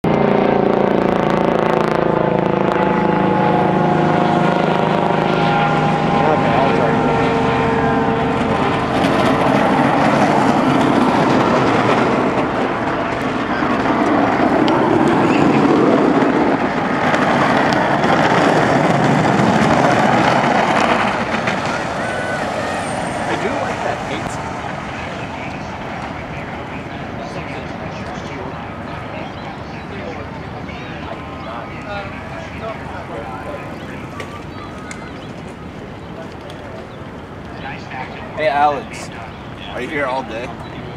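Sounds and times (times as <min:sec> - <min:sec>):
crowd yelling and cheering: 0:17.1 - 0:26.6.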